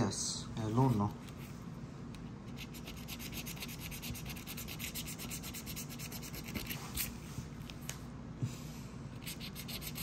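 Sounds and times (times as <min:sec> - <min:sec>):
lottery ticket being scratched: 0:02.4 - 0:07.1, 0:09.2 - 0:10.0.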